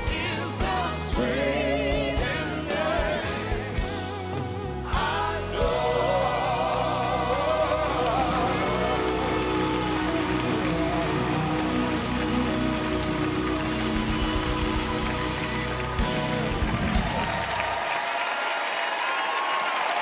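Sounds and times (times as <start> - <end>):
gospel band holding a chord: 0.0 - 17.6
audience applauding: 5.1 - 20.0.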